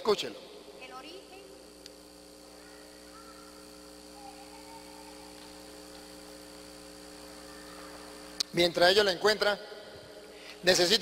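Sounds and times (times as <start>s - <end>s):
sound system electrical hum: 0.0s - 11.0s.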